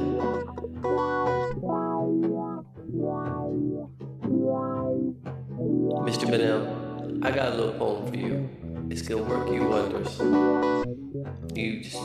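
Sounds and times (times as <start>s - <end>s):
guitar and bass chords: 0.0s - 12.0s.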